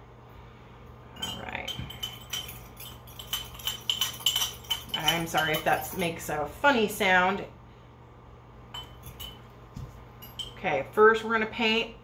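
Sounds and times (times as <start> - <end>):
metal spoon clinking in glass jar: 1.2 - 6.2, 8.8 - 9.5, 10.2 - 10.7.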